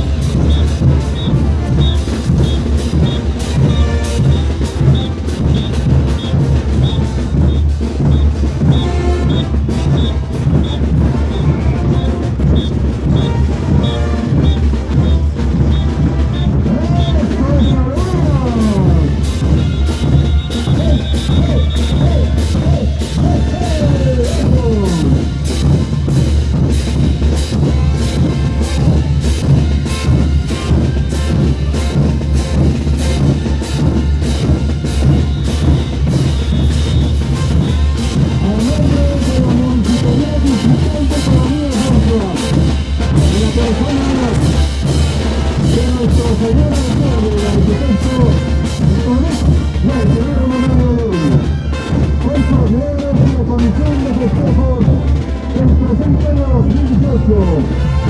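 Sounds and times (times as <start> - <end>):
bass drum beat: 0.0 - 58.0
parade band music: 0.0 - 58.0.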